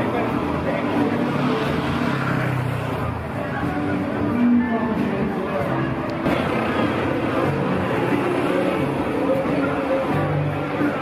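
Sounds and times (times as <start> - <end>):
people talking: 0.0 - 2.2
faint music: 0.0 - 11.0
traffic running past: 0.0 - 11.0.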